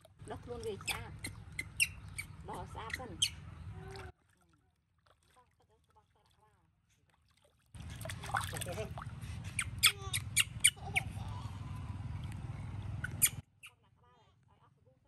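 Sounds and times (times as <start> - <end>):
water splashing in plastic basin: 3.8 - 6.5, 7.1 - 9.2
low steady hum: 7.8 - 13.4.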